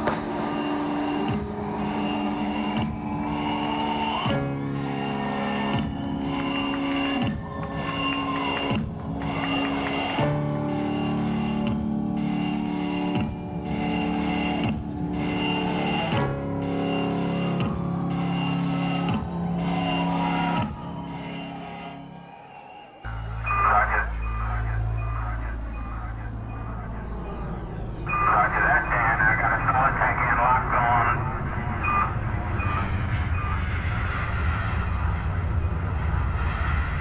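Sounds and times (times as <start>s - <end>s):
faint electronic beeps: 23.1s - 34.0s
low rumbling drone: 23.1s - 37.0s.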